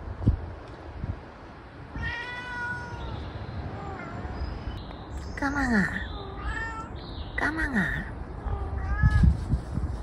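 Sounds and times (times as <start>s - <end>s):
cat meowing: 1.9s - 4.4s, 6.1s - 7.0s, 8.4s - 9.4s.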